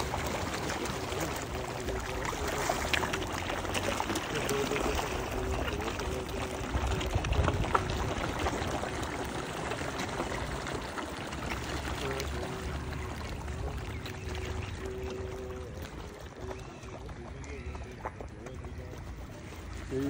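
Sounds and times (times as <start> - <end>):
fish splashing and slurping: 0.0 - 20.0.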